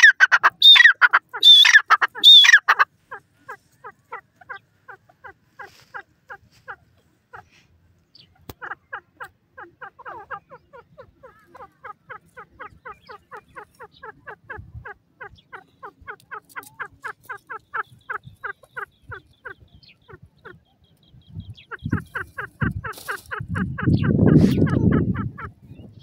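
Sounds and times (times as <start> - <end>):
bird calling in rapid notes: 0.0 - 5.0, 8.2 - 26.0.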